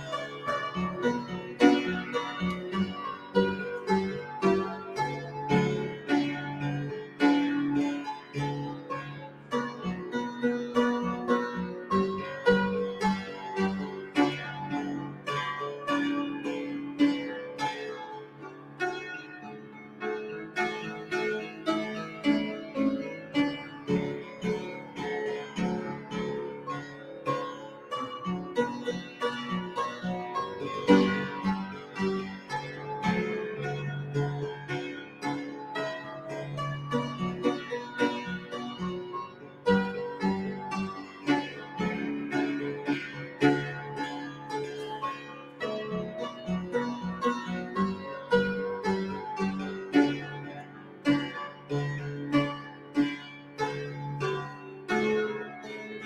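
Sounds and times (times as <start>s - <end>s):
piano and keyboard music: 0.0s - 56.0s.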